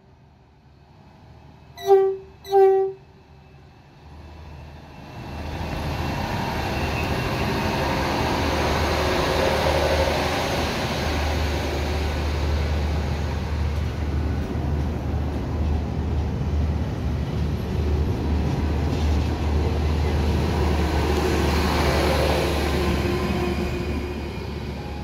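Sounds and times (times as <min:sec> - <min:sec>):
train horn toots: 0:01.8 - 0:03.1
train wheels rumbling: 0:04.2 - 0:25.0.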